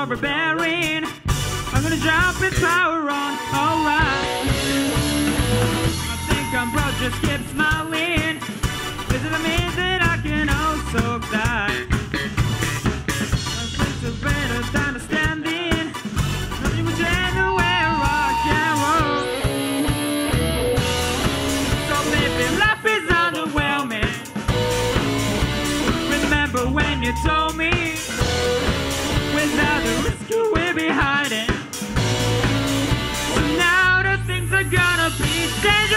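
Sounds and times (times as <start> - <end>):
man singing: 0.0 - 12.2, 13.2 - 19.6, 21.1 - 32.1, 33.3 - 35.9
rock band playing: 0.0 - 35.9.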